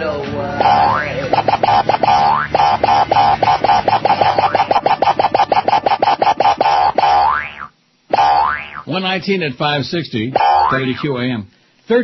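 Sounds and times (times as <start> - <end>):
rising boing: 0.6 - 3.8, 6.6 - 8.9, 10.4 - 11.1
comic song with boing syllables: 0.6 - 8.9, 10.4 - 11.1.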